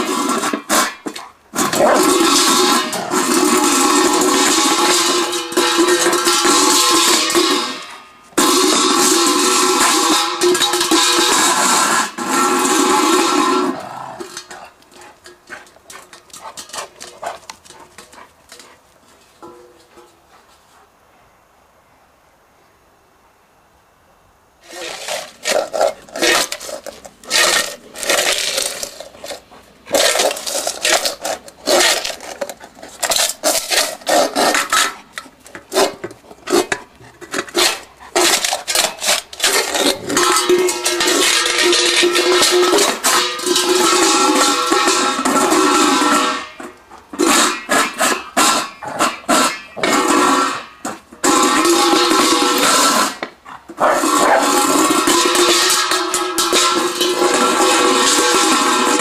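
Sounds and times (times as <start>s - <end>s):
metal bowl scraping on asphalt: 0.0s - 20.6s, 24.6s - 59.0s.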